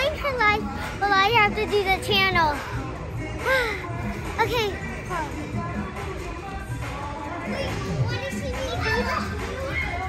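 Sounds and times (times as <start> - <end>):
background hubbub: 0.0 - 10.0
children playing and calling out: 7.4 - 10.0.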